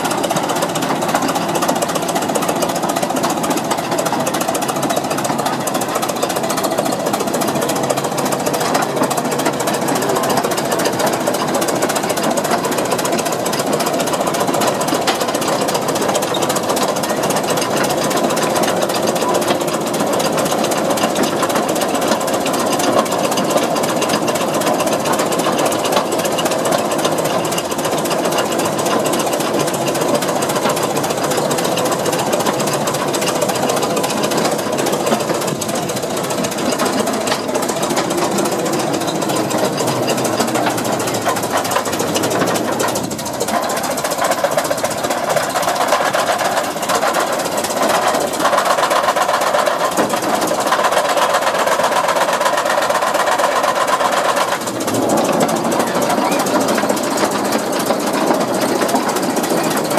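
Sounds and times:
tractor engine running: 0.0s - 59.9s.

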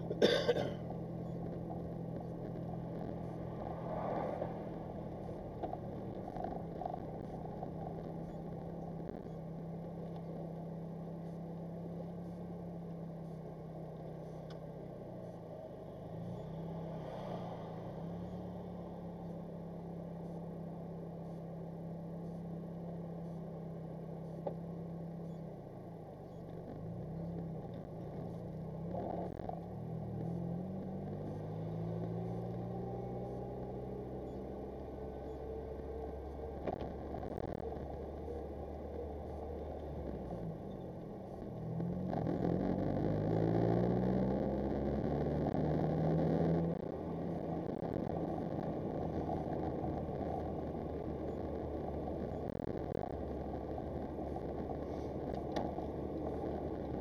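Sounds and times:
car engine from inside cabin: 0.0s - 57.0s.

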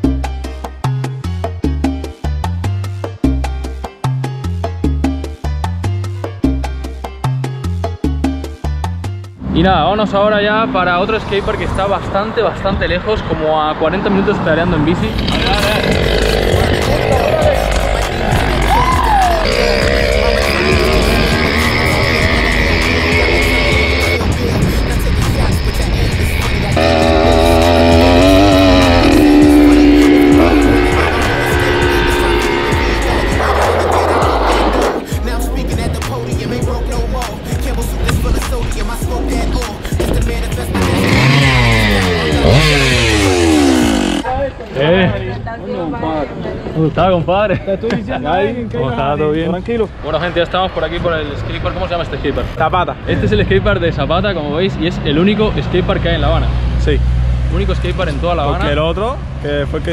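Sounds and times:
music: 0.0s - 13.0s, 15.3s - 44.2s
small petrol engine running: 15.2s - 24.2s, 26.8s - 34.6s, 40.6s - 44.3s.

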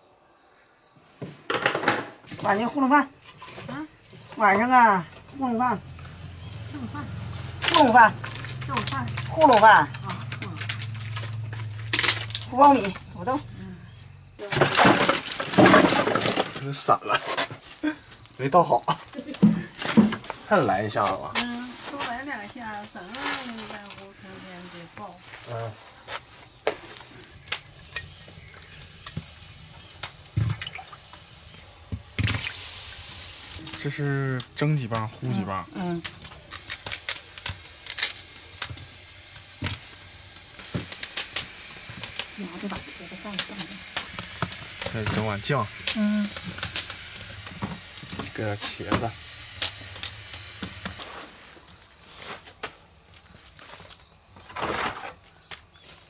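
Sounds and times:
water splashing: 30.2s - 31.2s, 32.1s - 34.0s.

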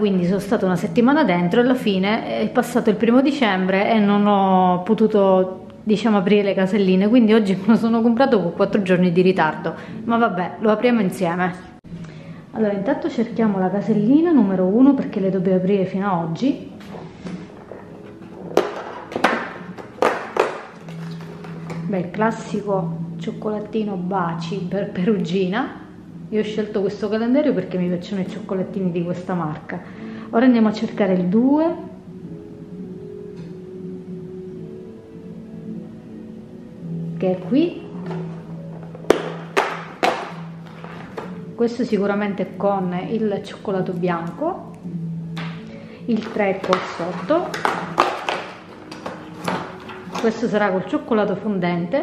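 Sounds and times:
soft background music: 0.0s - 52.0s.

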